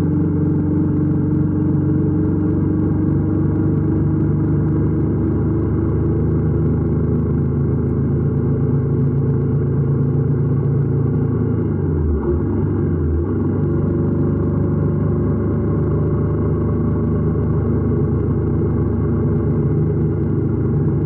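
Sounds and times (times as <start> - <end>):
motorcycle engine cruising: 0.0 - 21.0.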